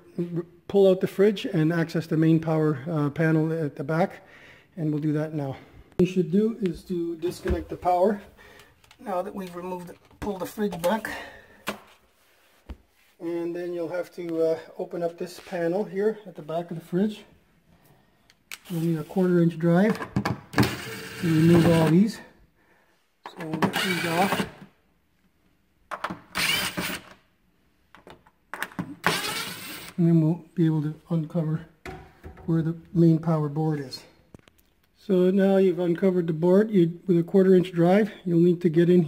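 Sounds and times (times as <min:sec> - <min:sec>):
cordless power driver running: 0:20.6 - 0:21.9, 0:23.8 - 0:24.5, 0:26.4 - 0:27.0, 0:29.0 - 0:30.0.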